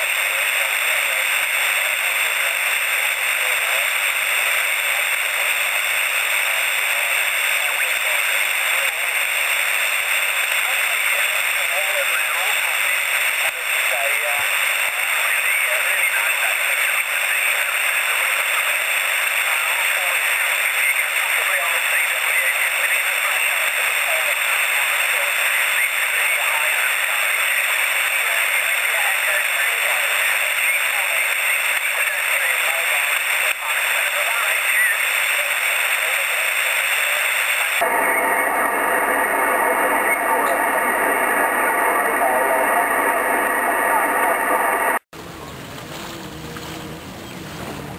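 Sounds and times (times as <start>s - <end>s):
radio static hiss: 0.0s - 45.6s
wind: 45.1s - 47.9s.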